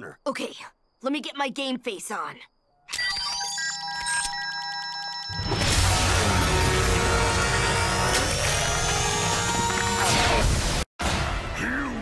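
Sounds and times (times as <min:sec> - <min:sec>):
music and effects rising in pitch: 0:05.6 - 0:10.4.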